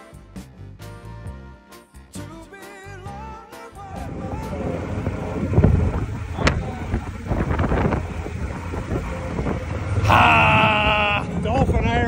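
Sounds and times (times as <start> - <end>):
low road rumble: 3.0 - 12.0
wind buffeting microphone: 3.9 - 12.0.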